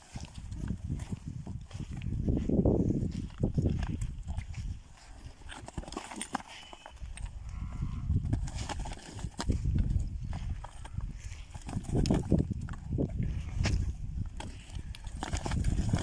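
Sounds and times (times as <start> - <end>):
hooves stamping and scraping: 0.0 - 16.0.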